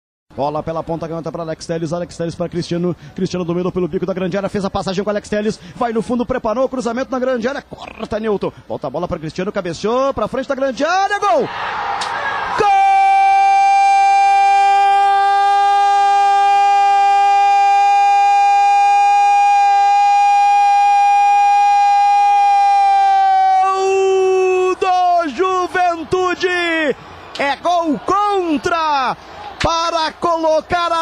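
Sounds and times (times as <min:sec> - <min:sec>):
commentator shouting goal: 0:12.6 - 0:31.0.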